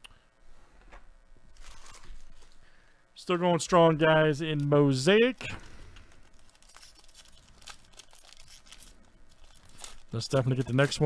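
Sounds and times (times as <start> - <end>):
foil wrapper crinkling and tearing: 1.6 - 2.6, 5.4 - 11.0.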